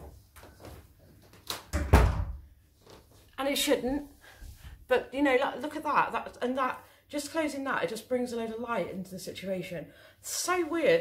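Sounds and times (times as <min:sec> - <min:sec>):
door closing thump: 0:01.7 - 0:02.4.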